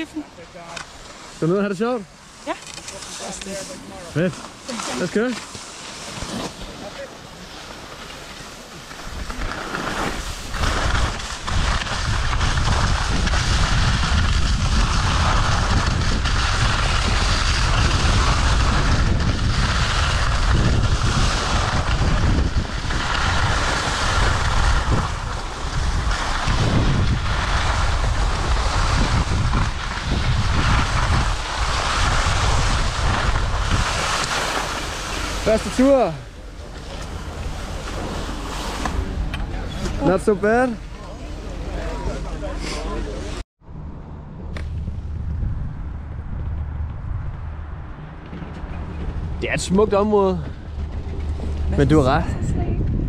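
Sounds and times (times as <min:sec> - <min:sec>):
skis scraping over snow: 0:00.0 - 0:43.4, 0:48.2 - 0:52.7
wind buffeting microphone: 0:08.5 - 0:41.7, 0:42.4 - 0:53.0.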